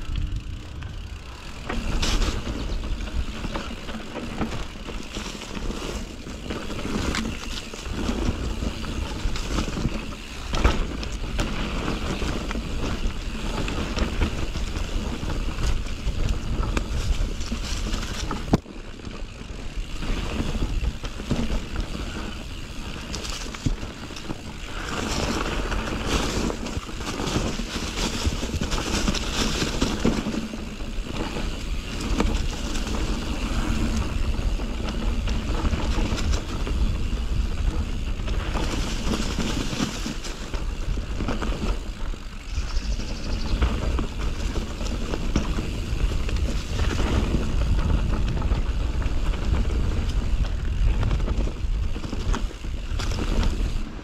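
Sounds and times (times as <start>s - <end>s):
bike rattling over bumps: 0.0s - 54.0s
tyres rolling over dirt and leaves: 0.0s - 54.0s
wind on microphone: 23.6s - 54.0s.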